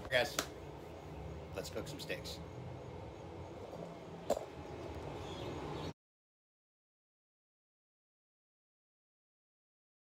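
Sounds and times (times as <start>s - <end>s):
low background hum: 0.0s - 6.0s.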